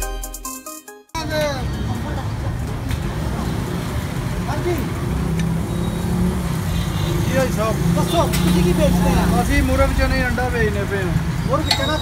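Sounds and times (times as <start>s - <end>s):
road traffic rumble: 1.2s - 12.0s.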